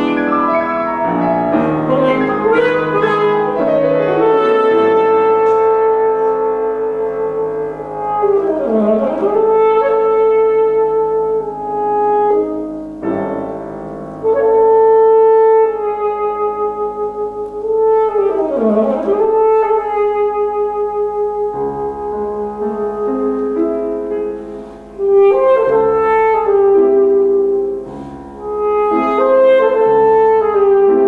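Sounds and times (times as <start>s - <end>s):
alto saxophone playing: 0.0s - 31.0s
piano accompaniment: 0.0s - 31.0s.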